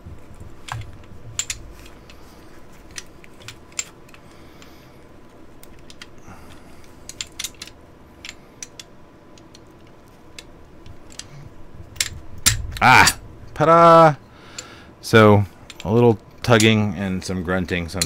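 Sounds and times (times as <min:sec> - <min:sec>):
metal clicks of rifle parts: 0:00.7 - 0:04.7, 0:05.6 - 0:06.2, 0:07.0 - 0:11.4, 0:15.7 - 0:16.8.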